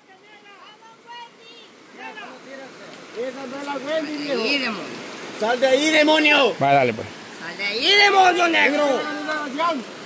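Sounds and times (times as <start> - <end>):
river flowing: 0.0 - 10.0.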